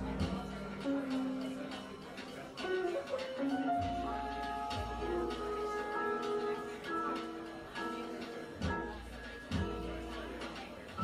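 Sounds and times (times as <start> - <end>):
cymbal and drum strokes: 0.0 - 11.0
jazz melody notes: 0.0 - 11.0.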